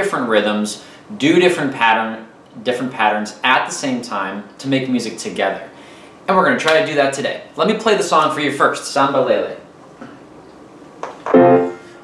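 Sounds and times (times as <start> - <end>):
grand piano note: 11.3 - 12.0.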